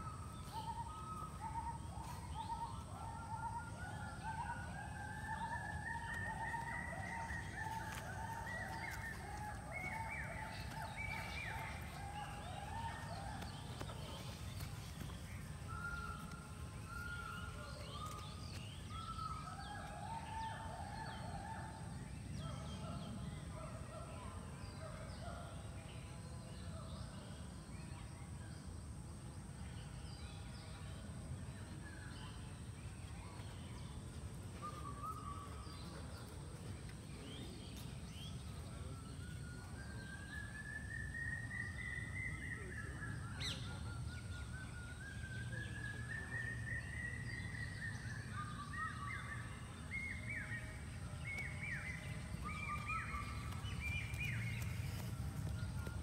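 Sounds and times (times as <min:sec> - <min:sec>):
birds calling: 0:48.9 - 0:56.0.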